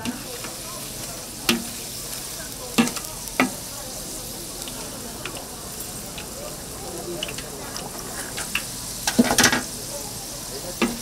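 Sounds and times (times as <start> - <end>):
fish cakes sizzling in oil: 0.0 - 11.0.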